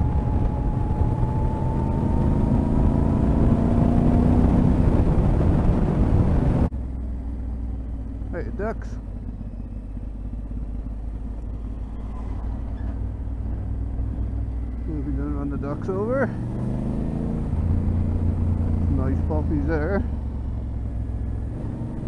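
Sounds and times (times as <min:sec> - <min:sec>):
wind noise on microphone: 0:00.0 - 0:06.7
motorcycle engine running: 0:00.0 - 0:22.0.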